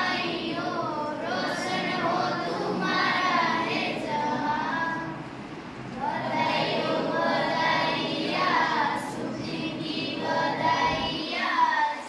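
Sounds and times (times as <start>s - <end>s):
children singing in unison: 0.0s - 12.0s.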